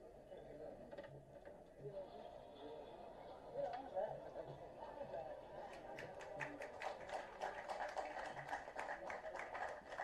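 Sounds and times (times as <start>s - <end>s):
low background murmur: 0.0s - 10.0s
faint audience clapping: 5.7s - 10.0s.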